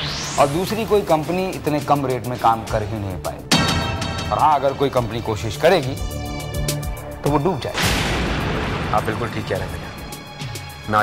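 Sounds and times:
background music: 0.0s - 11.0s
boom sound effect hit: 7.7s - 10.1s.

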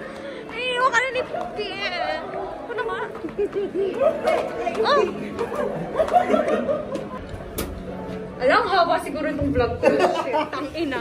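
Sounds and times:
faint music: 0.0s - 11.0s
people talking and calling out: 0.0s - 11.0s.

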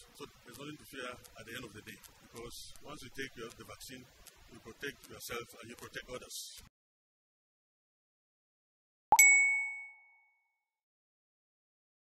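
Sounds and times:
bright bell ding: 9.1s - 10.5s.

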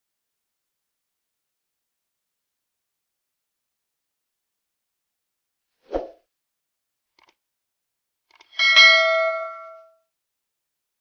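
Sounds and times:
bright bell ding: 8.6s - 10.0s.

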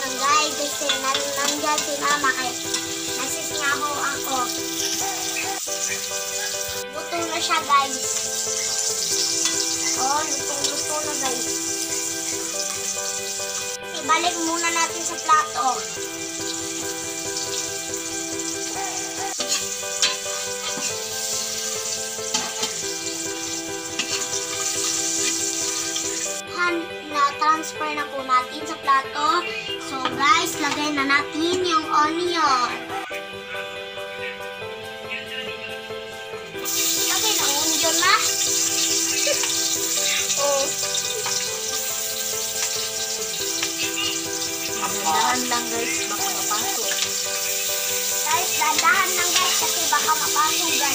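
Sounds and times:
fish sizzling in hot oil: 0.0s - 26.4s, 36.6s - 50.9s
background music: 0.0s - 50.9s
spatula turning food in wok: 8.0s - 11.4s, 19.3s - 26.3s, 38.0s - 45.3s, 45.9s - 50.6s.

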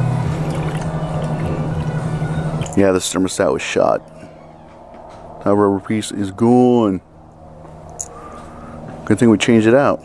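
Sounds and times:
liquid pouring from jug: 0.2s - 2.0s.

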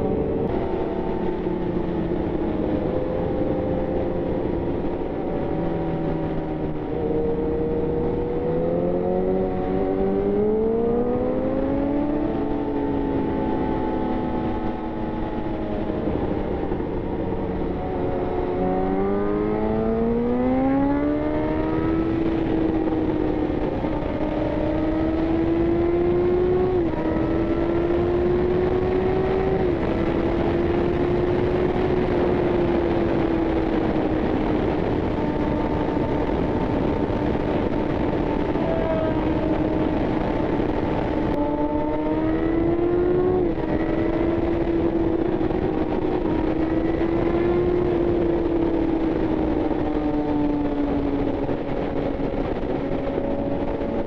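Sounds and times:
motorcycle engine revving: 0.0s - 54.0s
wind rush: 0.0s - 54.0s.

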